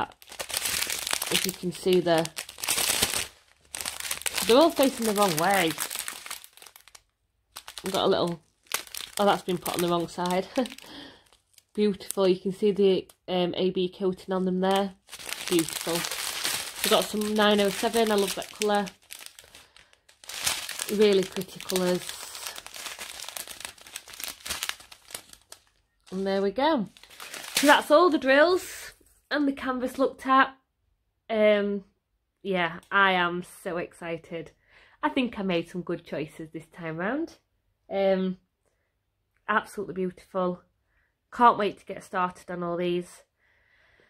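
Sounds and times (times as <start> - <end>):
plastic bag crinkling: 0.0 - 13.2, 13.9 - 28.3.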